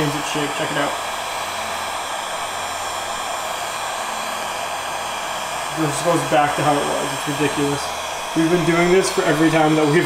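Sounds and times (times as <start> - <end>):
heat gun blowing: 0.0 - 10.0.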